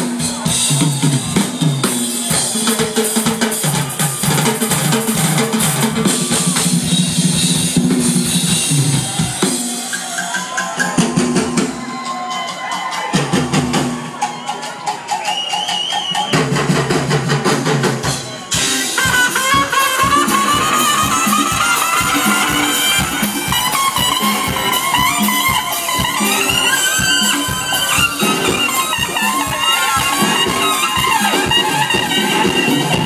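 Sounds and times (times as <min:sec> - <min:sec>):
drum kit beat: 0:00.0 - 0:33.0
live funk band: 0:00.0 - 0:33.0
saxophone horn lines: 0:18.5 - 0:33.0.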